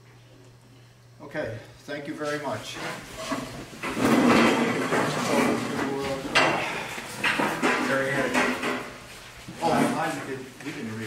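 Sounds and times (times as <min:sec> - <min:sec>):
metal chairs scraping on floor: 0:02.4 - 0:10.9.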